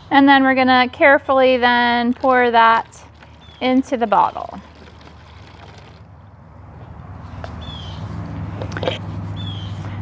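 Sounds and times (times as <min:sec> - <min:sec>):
low engine rumble: 0:00.0 - 0:10.0
bird chirp: 0:03.2 - 0:04.7, 0:07.5 - 0:08.1, 0:09.4 - 0:09.9.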